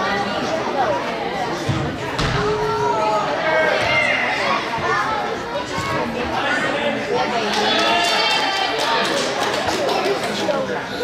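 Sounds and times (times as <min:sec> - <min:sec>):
people calling and shouting: 0:00.0 - 0:11.0.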